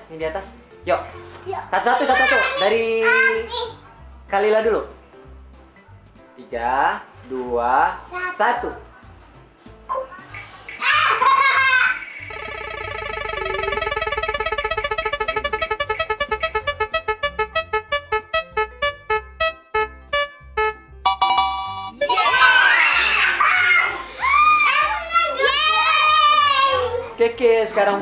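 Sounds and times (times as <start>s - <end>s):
spinning wheel ticks: 12.3s - 22.0s
children shrieking and shouting: 22.2s - 27.2s.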